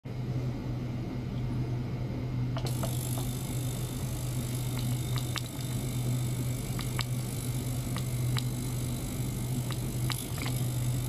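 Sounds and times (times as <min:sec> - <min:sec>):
sharp little ticks: 0:02.6 - 0:11.0
ultrasonic cleaner buzzing: 0:02.6 - 0:11.0.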